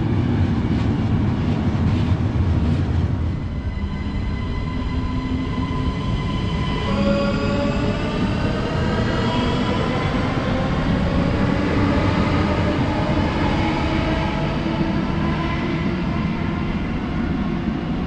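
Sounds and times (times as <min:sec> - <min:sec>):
wheels rumbling on rail: 0:00.0 - 0:18.0.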